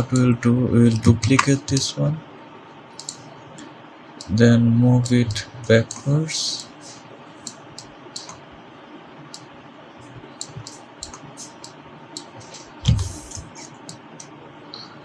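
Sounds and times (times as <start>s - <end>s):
steady background hiss: 0.0s - 15.0s
computer mouse and keyboard clicks: 3.0s - 3.2s, 10.4s - 14.3s.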